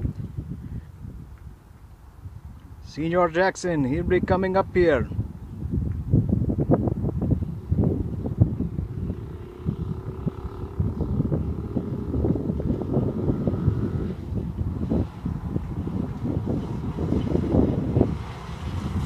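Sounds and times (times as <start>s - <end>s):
wind buffeting microphone: 0.0s - 19.0s
go-kart engine droning: 7.3s - 19.0s.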